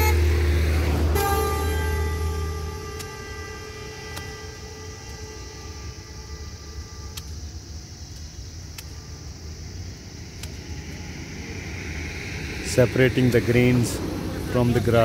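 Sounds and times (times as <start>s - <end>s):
held horn tone: 0.0s - 7.6s, 8.8s - 9.8s, 10.4s - 15.0s
steady low rumble: 0.0s - 15.0s.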